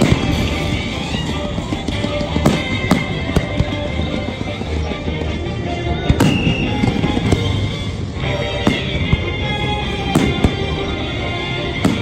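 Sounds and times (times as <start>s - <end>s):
fireworks bursting: 0.0s - 12.0s
show music: 0.0s - 12.0s.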